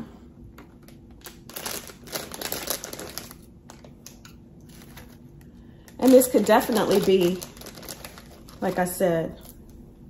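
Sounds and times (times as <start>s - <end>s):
plastic bag crinkling: 0.6s - 9.8s.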